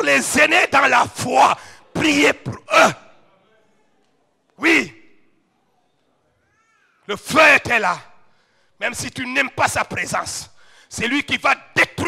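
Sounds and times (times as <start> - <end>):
faint high-pitched cry: 5.5 - 7.1.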